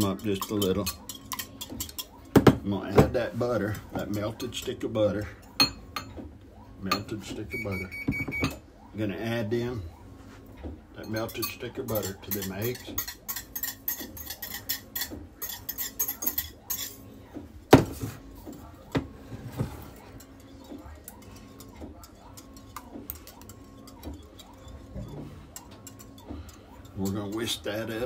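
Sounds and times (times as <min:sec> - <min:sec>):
metal utensil scraping glass bowl: 0:00.0 - 0:02.2, 0:11.1 - 0:17.0, 0:19.8 - 0:28.0.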